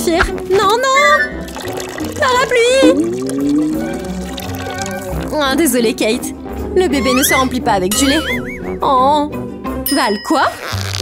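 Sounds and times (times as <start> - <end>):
background music: 0.0 - 11.0
milk splashing onto umbrella fabric: 1.5 - 5.3.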